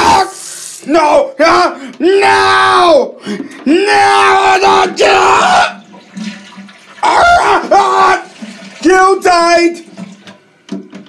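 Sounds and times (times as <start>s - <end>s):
rushing water hiss: 0.0s - 1.0s
person crying out loudly: 0.0s - 5.8s, 7.0s - 8.3s.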